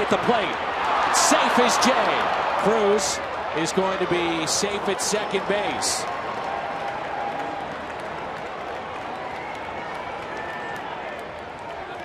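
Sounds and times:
ballpark crowd noise: 0.0 - 12.0.

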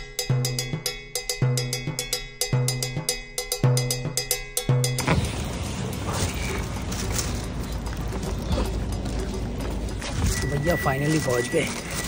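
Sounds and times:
sharp percussion ticks: 0.0 - 12.0.

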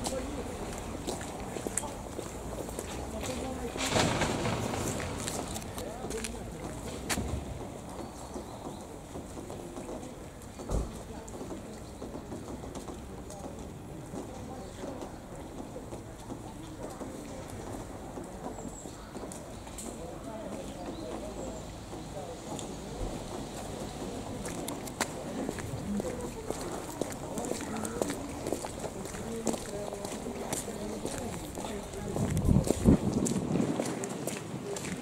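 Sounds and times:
passers-by talking indistinctly: 0.0 - 35.0
thump: 10.7 - 11.0.

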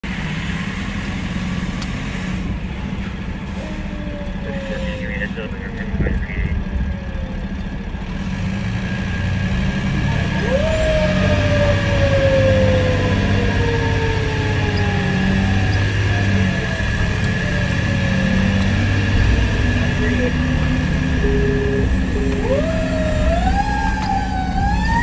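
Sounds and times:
fire engine running: 0.0 - 25.0
siren winding up and falling: 10.2 - 25.0.

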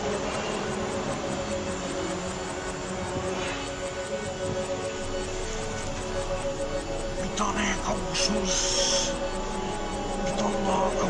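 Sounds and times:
background music of sustained tones: 0.0 - 11.0.

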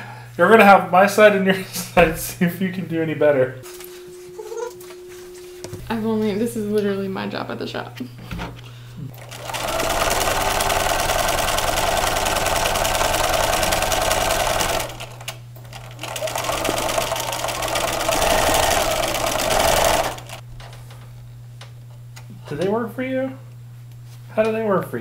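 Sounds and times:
sewing machine stitching: 9.2 - 20.4.

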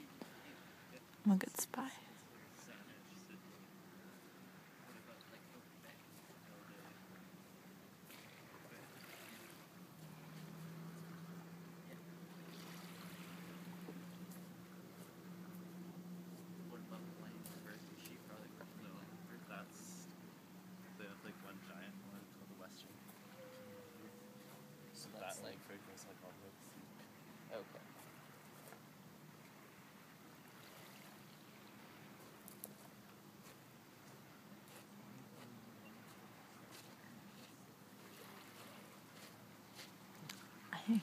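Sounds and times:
small waves lapping: 0.0 - 41.0
soft even hiss: 0.0 - 41.0.

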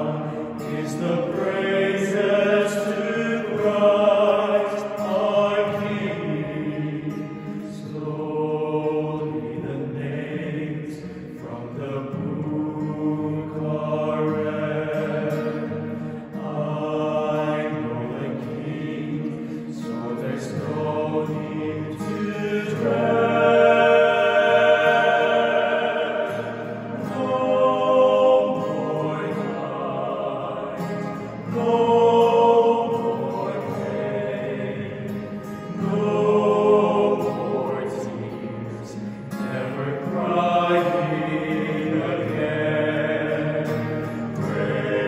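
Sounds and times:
acoustic guitar: 0.0 - 45.0
male choir singing in harmony: 0.0 - 45.0.

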